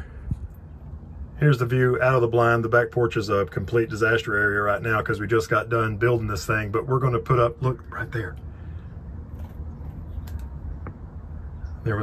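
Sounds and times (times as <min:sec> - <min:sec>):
low uneven rumble: 0:00.0 - 0:12.0.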